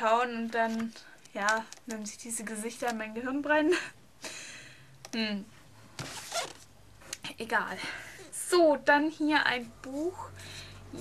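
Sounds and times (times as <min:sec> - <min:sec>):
book rustling swish: 0:06.0 - 0:06.6.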